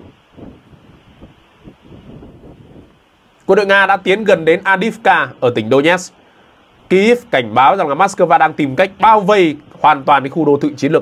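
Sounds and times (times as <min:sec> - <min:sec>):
wind noise on microphone: 0:00.0 - 0:04.6.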